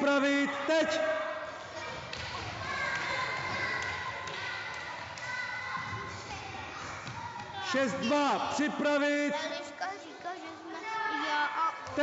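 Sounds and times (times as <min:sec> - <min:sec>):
children running on wooden floor: 0:01.6 - 0:07.8.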